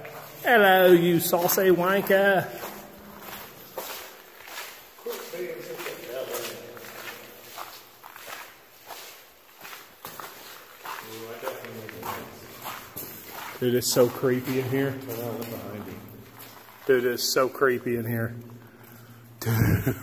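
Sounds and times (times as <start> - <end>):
footsteps on gravel: 0.0 - 19.3.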